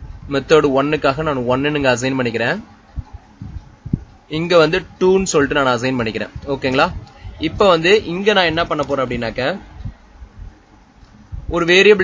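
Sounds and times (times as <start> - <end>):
man speaking: 4.3 - 9.7, 11.5 - 12.0.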